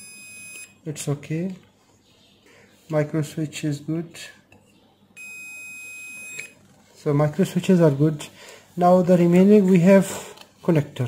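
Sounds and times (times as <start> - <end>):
multimeter high beep: 0.0 - 0.8, 5.2 - 6.6.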